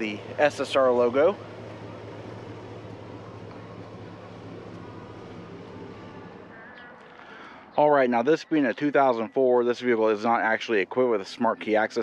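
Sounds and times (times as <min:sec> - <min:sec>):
low mechanical hum: 0:00.0 - 0:12.0
outdoor background noise: 0:00.0 - 0:12.0.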